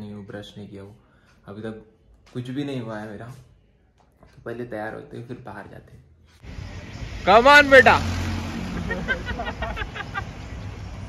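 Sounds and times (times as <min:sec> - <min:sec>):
traffic hum: 0:06.4 - 0:11.0.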